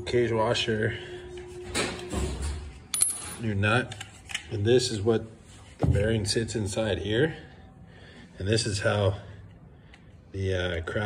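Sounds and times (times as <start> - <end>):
metal clink on concrete: 2.9 - 3.4.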